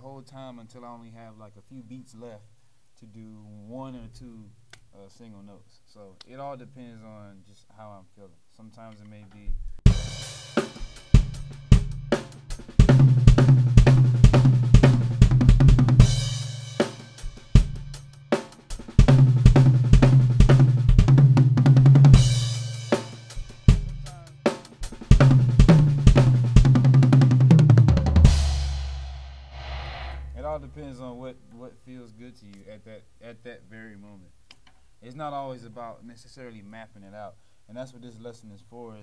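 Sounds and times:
drum kit playing: 9.8 - 31.4
cymbal crash: 28.2 - 31.4.

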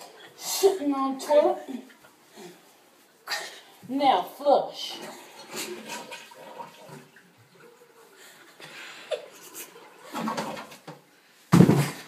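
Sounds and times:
toilet flushing: 4.2 - 11.1
loud knock: 11.5 - 12.0.

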